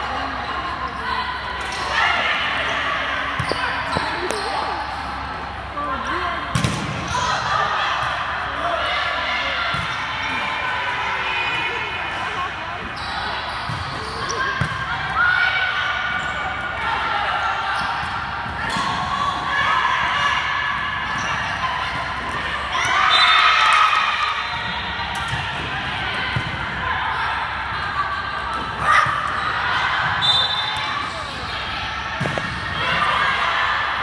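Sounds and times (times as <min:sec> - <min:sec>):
shouts and chatter: 0:00.0 - 0:34.0
volleyball being hit: 0:32.2 - 0:32.6.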